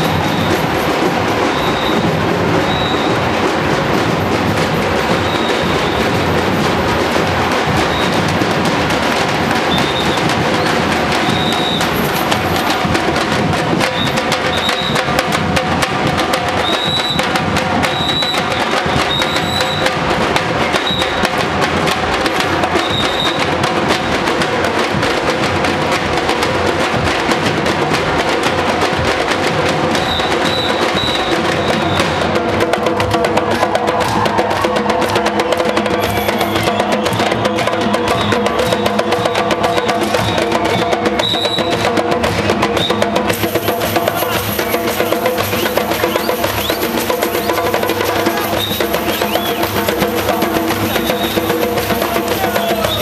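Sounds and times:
percussion band drumming: 0:00.0 - 0:53.0.

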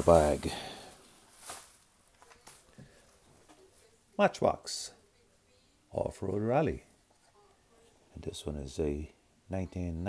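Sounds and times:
faint handling noises: 0:00.0 - 0:04.0.

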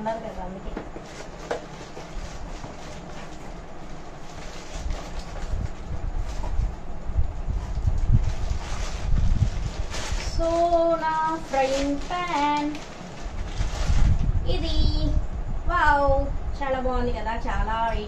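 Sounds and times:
cardboard and plastic rustling: 0:00.6 - 0:06.8, 0:07.5 - 0:14.8.

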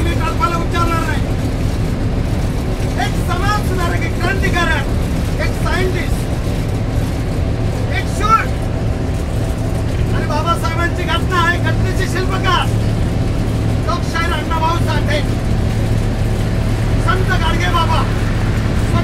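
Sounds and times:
bus engine and road noise: 0:00.0 - 0:19.0.

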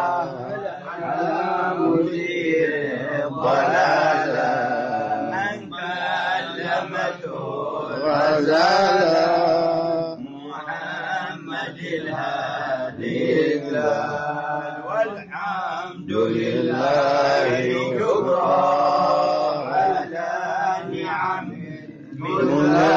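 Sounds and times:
men chanting: 0:00.0 - 0:22.9.

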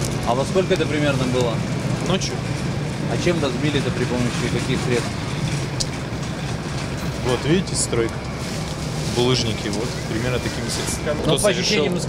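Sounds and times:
street noise with low rumble: 0:00.0 - 0:12.0.

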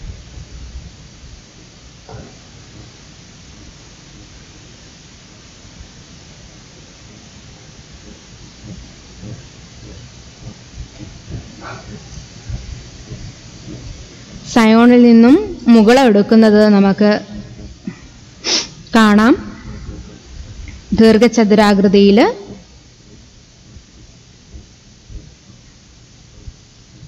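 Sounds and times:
background hiss: 0:00.0 - 0:27.0.

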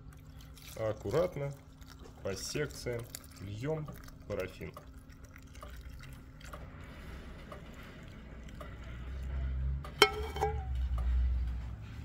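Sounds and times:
metal pot clinking down: 0:10.0 - 0:10.8.

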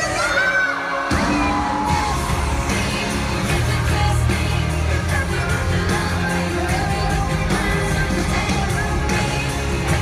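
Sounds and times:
live pop concert music: 0:00.0 - 0:10.0
person singing: 0:00.0 - 0:10.0
heavy bass: 0:01.1 - 0:10.0.

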